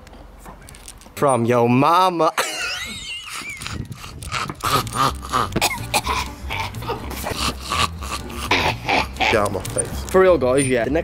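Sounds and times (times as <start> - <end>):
man coughing: 2.4 - 9.4
man clearing his throat: 4.3 - 9.4.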